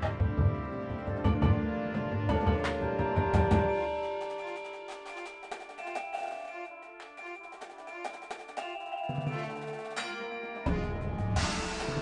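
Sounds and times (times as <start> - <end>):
marching band wind chords: 0.0 - 6.6, 7.4 - 12.0
percussion taps: 2.3 - 6.4.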